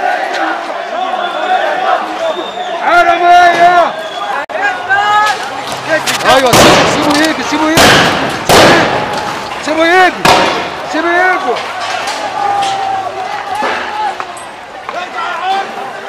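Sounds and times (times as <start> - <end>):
men shouting: 0.0 - 6.5, 8.4 - 16.0
sharp loud bangs: 6.2 - 9.3, 10.2 - 10.9.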